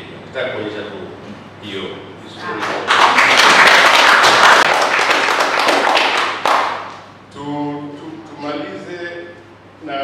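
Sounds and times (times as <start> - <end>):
audience clapping: 2.6 - 7.1.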